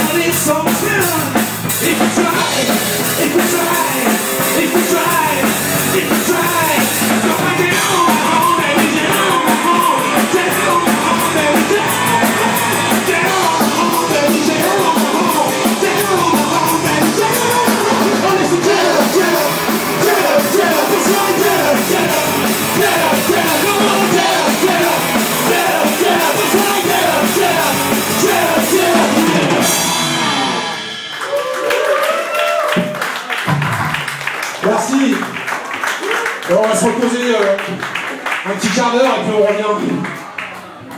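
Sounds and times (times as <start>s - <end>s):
live rock band playing: 0.0s - 34.3s.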